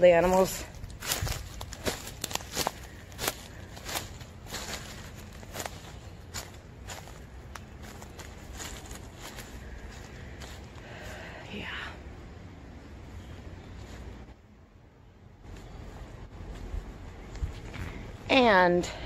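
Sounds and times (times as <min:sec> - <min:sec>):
footsteps crunching on mulch: 0:00.0 - 0:11.3
steady low rumble: 0:00.0 - 0:19.0.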